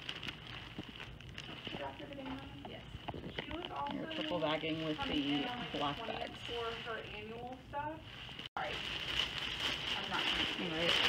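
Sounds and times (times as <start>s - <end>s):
plastic bag crackling: 0.0s - 11.0s.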